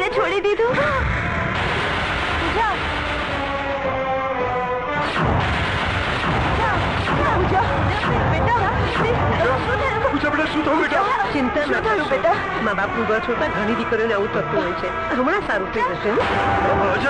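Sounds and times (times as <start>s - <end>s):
film soundtrack music: 0.0s - 17.0s
deep booming hits: 0.7s - 13.6s, 14.2s - 17.0s.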